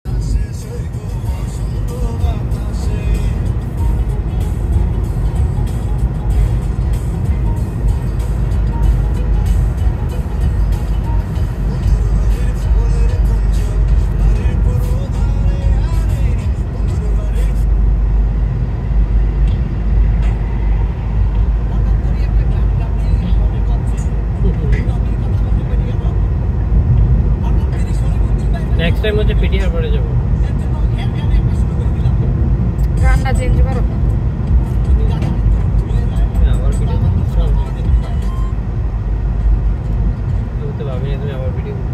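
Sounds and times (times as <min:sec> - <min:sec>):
car interior road rumble: 0:00.1 - 0:41.9.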